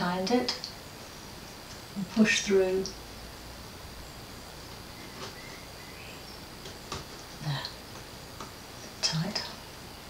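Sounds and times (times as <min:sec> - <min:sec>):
faint high whine: 0:00.0 - 0:10.0
handling noise: 0:04.4 - 0:08.9.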